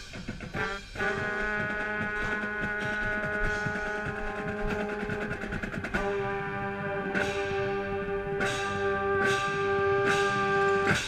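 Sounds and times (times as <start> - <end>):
marching band brass chord: 0.5 - 11.0.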